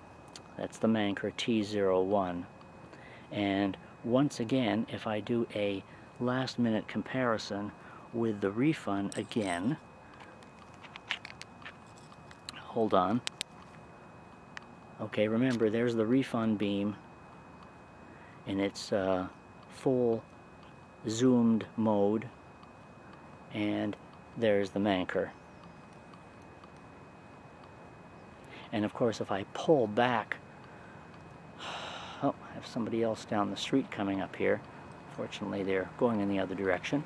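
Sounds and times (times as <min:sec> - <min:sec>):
low steady hiss: 0:00.0 - 0:37.0
flashlight handling clicks and taps: 0:10.1 - 0:12.5
faint ticks: 0:25.5 - 0:26.9, 0:30.6 - 0:31.4.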